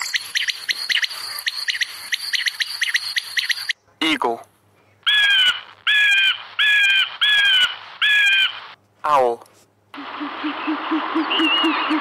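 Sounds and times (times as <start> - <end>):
quail chirping: 0.0 - 3.8, 5.1 - 8.6, 10.0 - 12.0.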